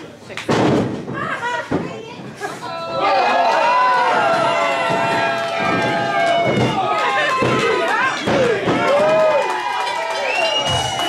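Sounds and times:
spectators shouting: 0:02.8 - 0:11.0.

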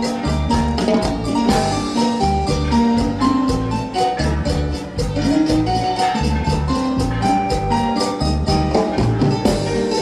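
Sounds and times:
bass line: 0:00.0 - 0:10.0
latin dance band playing: 0:00.0 - 0:10.0
melody line: 0:00.0 - 0:10.0
quick steady percussion beat: 0:00.0 - 0:10.0.

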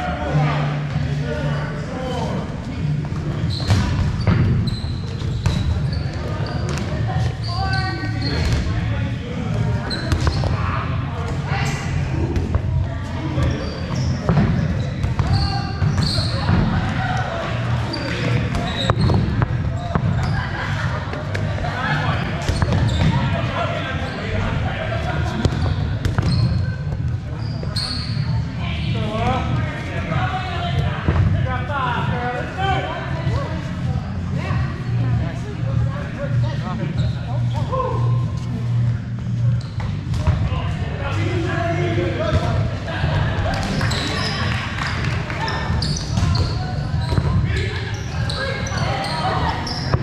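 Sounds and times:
sneaker squeaks: 0:03.2 - 0:08.8, 0:09.8 - 0:11.8, 0:13.1 - 0:17.0, 0:17.7 - 0:20.8, 0:22.3 - 0:24.4, 0:25.3 - 0:28.6, 0:36.5 - 0:40.4, 0:43.4 - 0:50.0.

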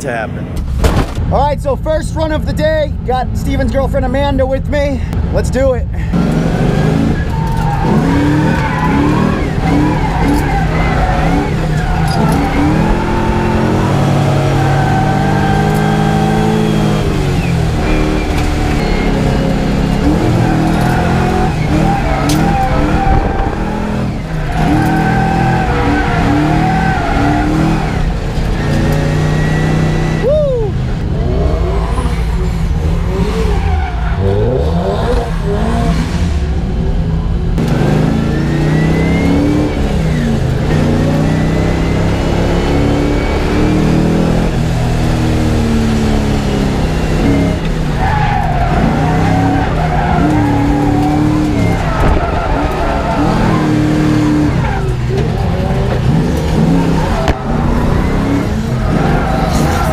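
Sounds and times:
car engine revving hard: 0:06.1 - 0:30.2, 0:31.0 - 0:36.7, 0:37.6 - 0:59.9
tires squealing: 0:06.2 - 0:36.7, 0:37.6 - 0:59.9.

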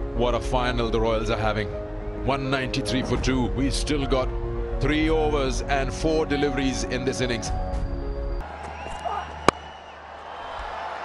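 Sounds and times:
background crowd noise: 0:08.4 - 0:11.0
cricket bat striking ball: 0:09.4 - 0:09.7.

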